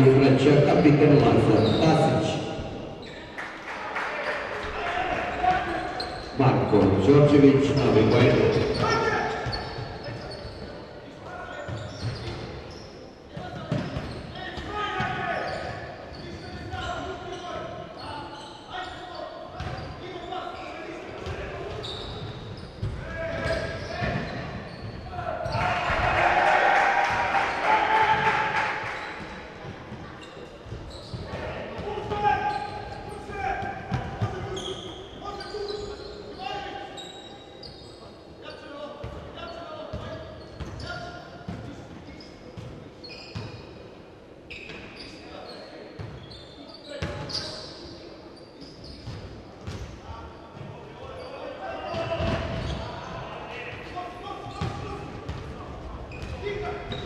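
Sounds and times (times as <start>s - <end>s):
basketball bouncing on wooden court: 19.6s - 19.8s, 33.9s - 34.4s.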